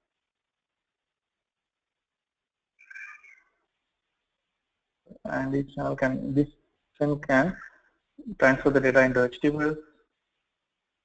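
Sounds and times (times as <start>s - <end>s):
faint high-pitched squeak: 2.8s - 3.6s.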